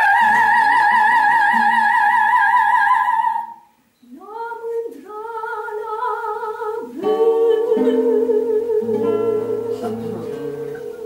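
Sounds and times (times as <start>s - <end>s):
classical guitar low notes: 0.0s - 11.0s.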